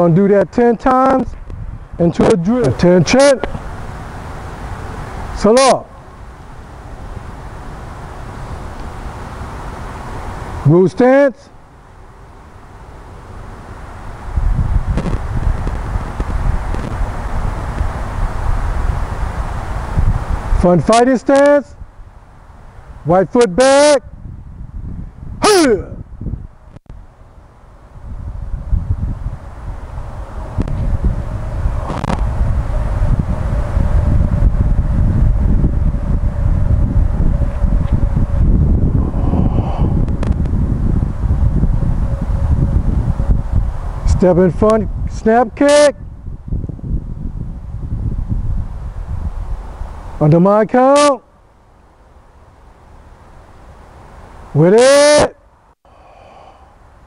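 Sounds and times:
wind buffeting microphone: 0.0s - 10.6s, 13.2s - 20.9s, 24.0s - 50.2s
faint steady hum: 55.4s - 57.0s.

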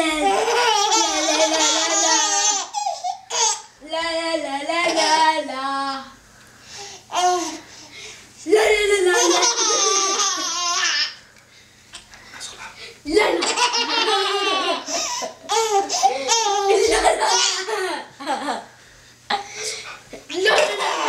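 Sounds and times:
baby laughing: 0.0s - 3.7s, 9.1s - 11.1s, 13.2s - 18.4s, 20.3s - 21.0s.

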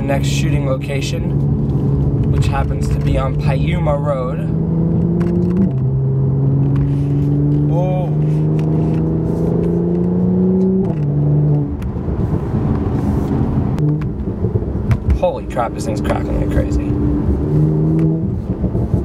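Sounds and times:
car engine accelerating hard: 0.0s - 19.0s.

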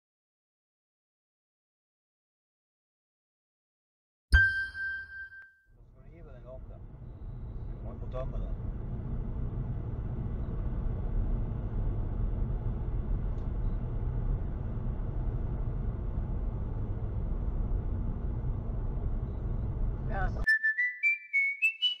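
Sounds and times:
car engine and road rumble: 6.1s - 20.5s
rising whistle notes: 20.5s - 22.0s.

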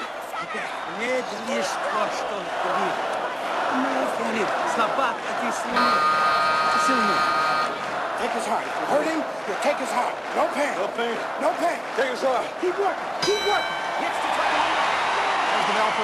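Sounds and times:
crowd shouting and chanting: 0.0s - 16.0s
steady ringing tone: 5.8s - 7.8s, 13.2s - 14.4s.

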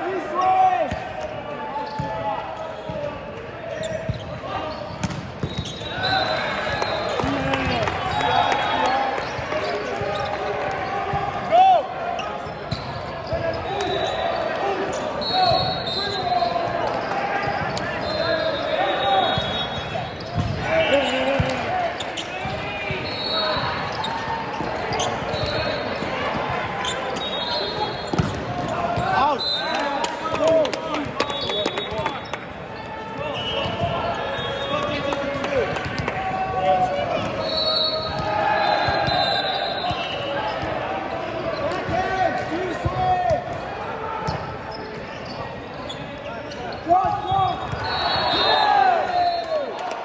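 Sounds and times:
sneakers squeaking on court floor: 1.8s - 11.2s, 12.0s - 29.6s, 37.0s - 43.6s, 44.2s - 48.8s
players shouting: 5.7s - 45.4s, 46.5s - 50.0s.

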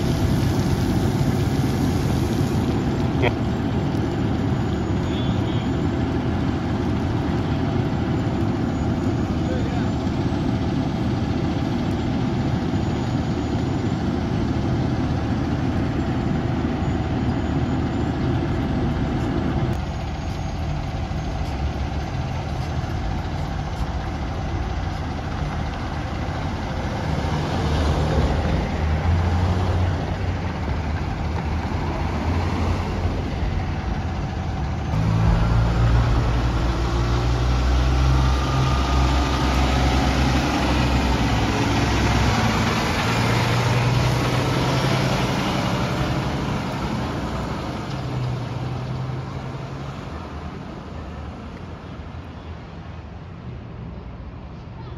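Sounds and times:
diesel engine idling: 0.0s - 53.0s
steady rushing noise: 32.3s - 39.2s.

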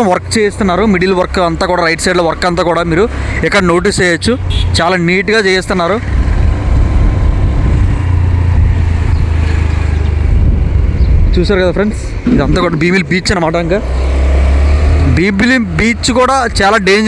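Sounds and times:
man talking: 0.0s - 6.0s, 11.3s - 13.9s, 15.0s - 17.0s
motorbike engine rumble: 4.1s - 16.8s
wind on microphone: 6.1s - 12.8s.

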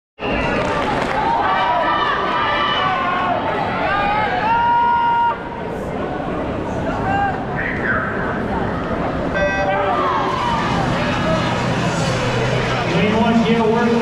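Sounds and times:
crowd chatter: 0.2s - 14.0s
short electronic tone: 9.4s - 9.8s.

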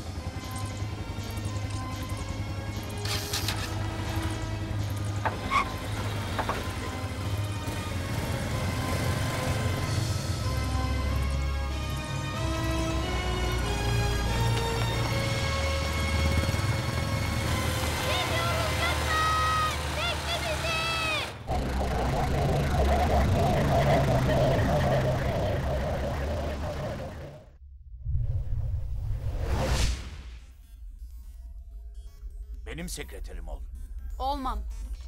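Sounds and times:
steady rushing noise: 21.4s - 27.6s.

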